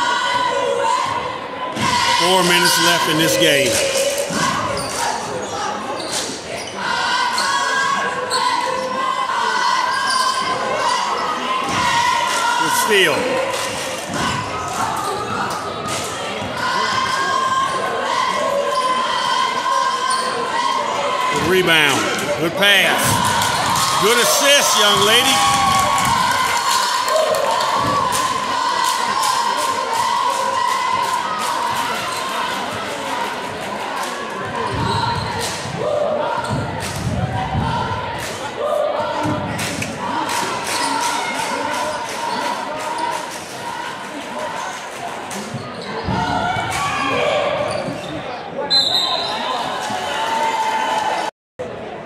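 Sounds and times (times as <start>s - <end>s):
voices echoing in gym: 0.0s - 52.0s.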